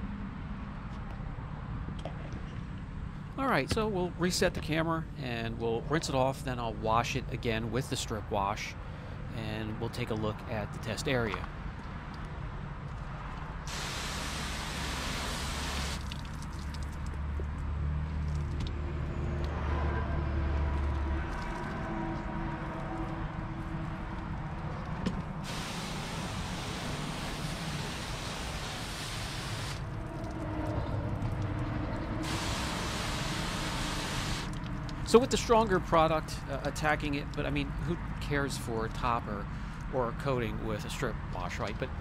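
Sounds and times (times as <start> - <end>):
hose spraying water on car: 13.7 - 16.9, 25.4 - 30.0, 32.2 - 34.6
quiet washing sounds: 13.7 - 18.6, 25.4 - 35.0.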